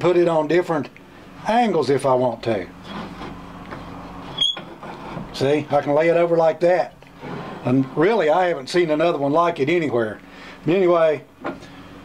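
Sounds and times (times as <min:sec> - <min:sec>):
high-pitched metallic squeak: 0:04.2 - 0:04.8.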